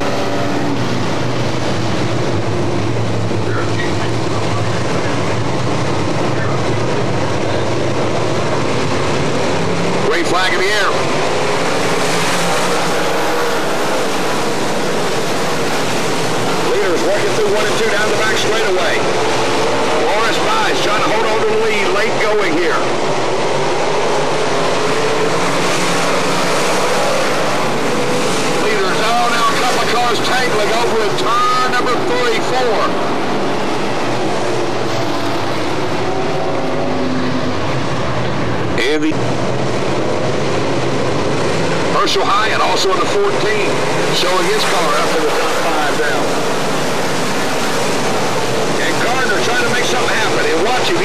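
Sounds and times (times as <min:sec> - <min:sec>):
race car engines: 0:00.0 - 0:51.0.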